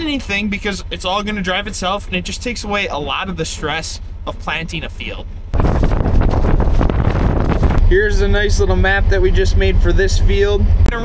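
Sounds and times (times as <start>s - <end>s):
man talking: 0.0s - 5.3s, 7.8s - 11.0s
vehicle engine running: 0.0s - 11.0s
wind on microphone: 5.5s - 8.5s.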